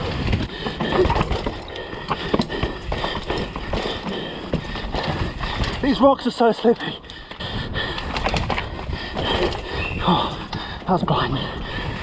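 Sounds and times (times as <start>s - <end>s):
bike knocking and rattling on rocks: 0.0s - 6.8s, 8.0s - 11.2s
bike tyres rushing over dirt: 0.0s - 6.8s, 7.6s - 11.0s.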